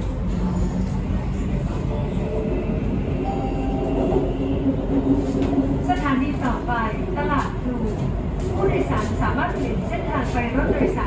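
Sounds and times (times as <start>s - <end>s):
electric train rumbling: 0.0s - 11.0s.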